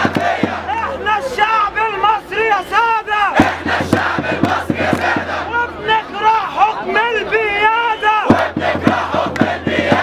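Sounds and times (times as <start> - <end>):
rapid sharp beats: 0.0 - 0.8, 3.4 - 5.6, 8.2 - 10.0
crowd chanting slogans: 0.0 - 10.0.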